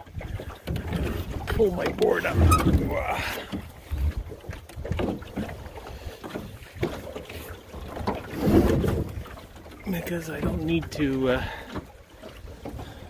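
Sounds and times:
wind buffeting microphone: 0:00.0 - 0:05.8
water running along boat hull: 0:00.0 - 0:13.0
wooden knocks and clunks: 0:00.2 - 0:05.6.

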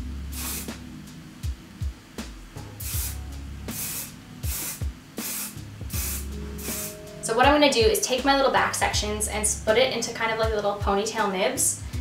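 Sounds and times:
hairspray can spraying: 0:00.3 - 0:00.8, 0:02.8 - 0:07.0.

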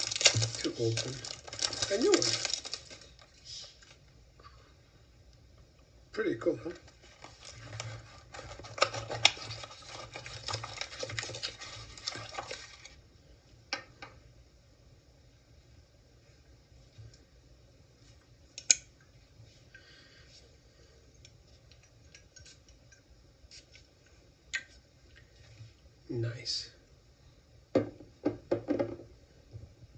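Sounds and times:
plastic wrap rustling: 0:00.0 - 0:04.0, 0:06.7 - 0:13.0.

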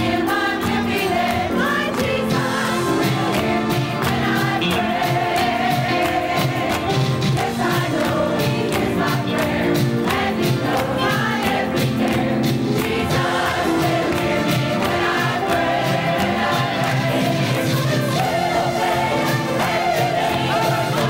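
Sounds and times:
choir singing gospel song: 0:00.0 - 0:21.0
instrumental accompaniment with beat: 0:00.0 - 0:21.0.

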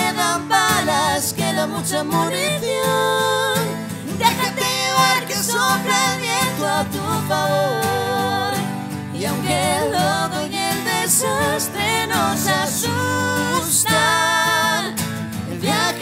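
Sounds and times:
acoustic guitar: 0:00.0 - 0:16.0
person singing: 0:00.0 - 0:16.0.

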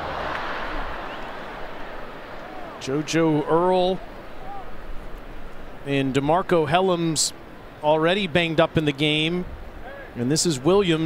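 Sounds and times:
murmur of large crowd: 0:00.0 - 0:06.2.

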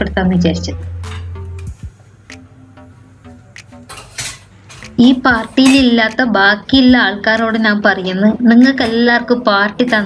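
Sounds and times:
cookware clatter: 0:03.9 - 0:04.8
metal cookware clinking and scraping: 0:03.9 - 0:04.8.

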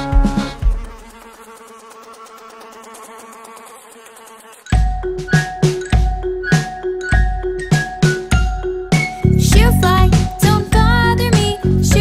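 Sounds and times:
bouncy children's song music: 0:04.7 - 0:12.0
upbeat children's tune: 0:04.7 - 0:12.0.

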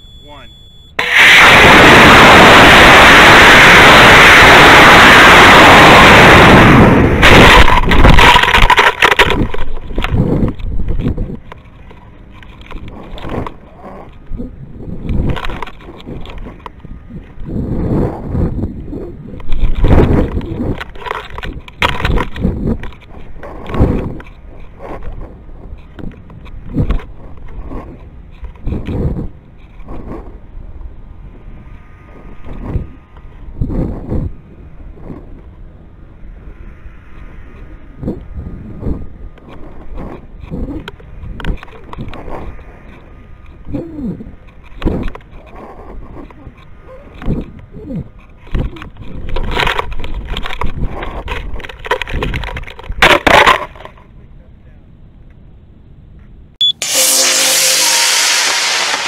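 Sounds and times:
rocket motor roaring: 0:01.0 - 0:11.2, 0:56.6 - 0:59.0
wind buffeting microphone: 0:01.2 - 0:53.0.

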